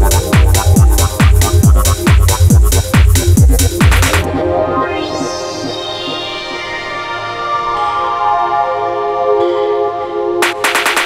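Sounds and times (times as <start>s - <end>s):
sustained synthesizer chords: 0.0s - 11.0s.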